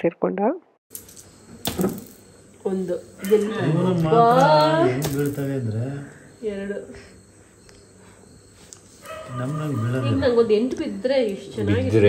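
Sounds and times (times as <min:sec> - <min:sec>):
faint steady high tone: 0:01.0 - 0:12.0
people talking and calling out: 0:02.6 - 0:08.0, 0:09.1 - 0:12.0.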